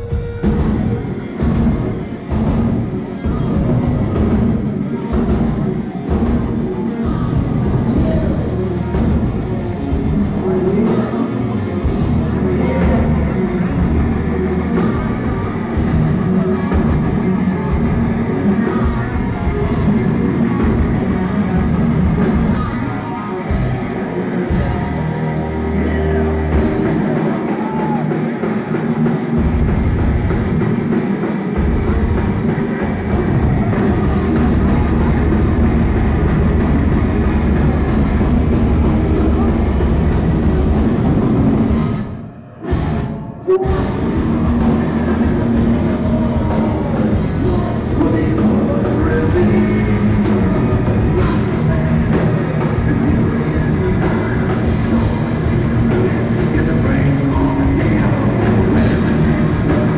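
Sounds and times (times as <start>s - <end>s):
bass guitar: 0.0s - 59.9s
distorted electric guitars: 0.0s - 59.9s
pounding drum kit: 0.0s - 59.9s.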